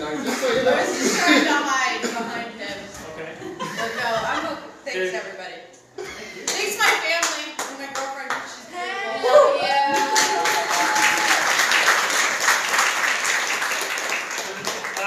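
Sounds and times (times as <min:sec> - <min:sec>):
person shouting woo: 0:09.2 - 0:11.4
audience applause: 0:09.8 - 0:15.0.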